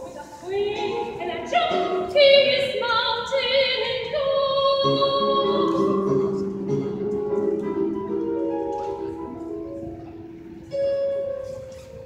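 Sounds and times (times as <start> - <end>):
woman singing with piano: 0.0 - 8.2.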